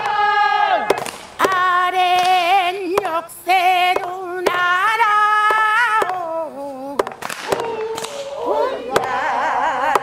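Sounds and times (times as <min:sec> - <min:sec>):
wooden poles knocking: 0:07.0 - 0:08.1
several voices singing: 0:07.4 - 0:10.0.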